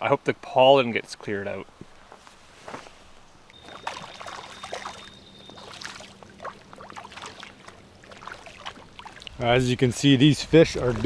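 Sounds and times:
faint steady hum: 0.0 - 10.2
fish splashing on pond surface: 3.5 - 9.4.

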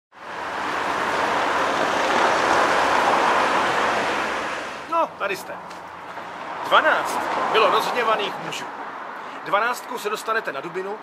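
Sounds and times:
loud even rushing noise: 0.2 - 5.1.

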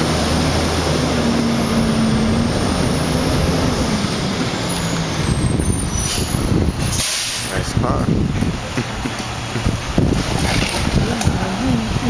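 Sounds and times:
diesel engine idling: 0.0 - 10.2
wind on microphone: 1.3 - 7.0, 7.6 - 12.0.

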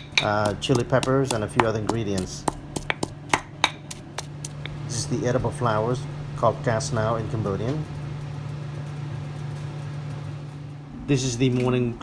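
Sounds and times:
stone pestle knocking in mortar: 0.0 - 4.8.

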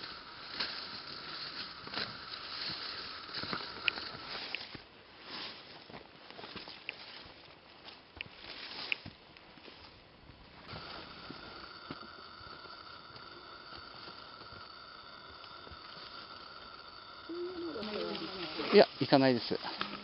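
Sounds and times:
footsteps on dirt trail: 0.0 - 20.0
brushing through grass: 8.4 - 10.0
high-pitched whine: 10.6 - 20.0.

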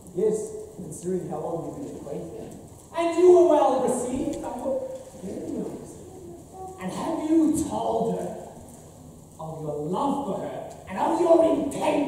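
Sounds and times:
man speaking: 0.0 - 6.2, 6.8 - 8.6, 9.4 - 12.0.

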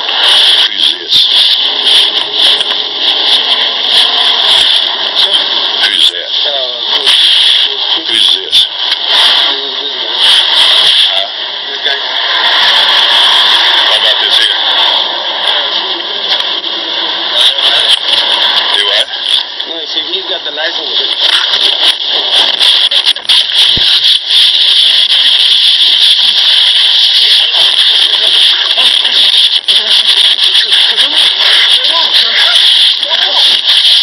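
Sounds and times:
muffled indistinct voices: 0.0 - 34.0
radio hiss: 0.0 - 34.0.

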